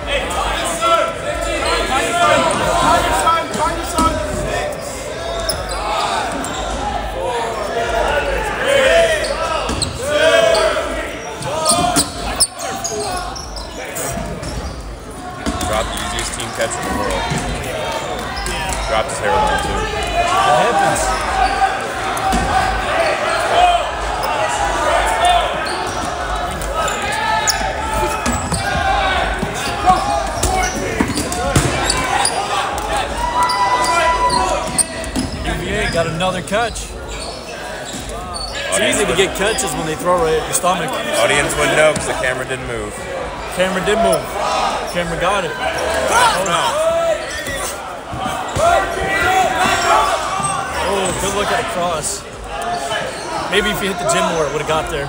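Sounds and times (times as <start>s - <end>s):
players shouting in gymnasium: 0.0s - 55.0s.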